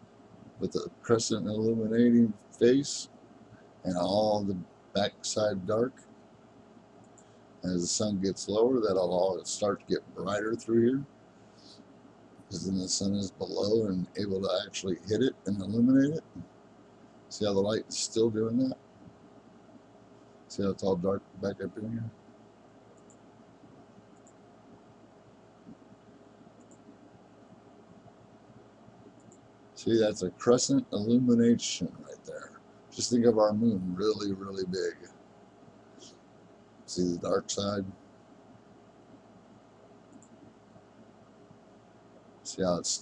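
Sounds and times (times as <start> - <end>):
microphone hiss: 0.0 - 43.0.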